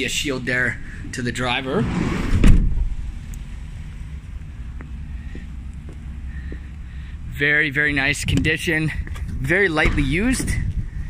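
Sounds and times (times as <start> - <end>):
wind rumble on microphone: 7.2 - 11.0.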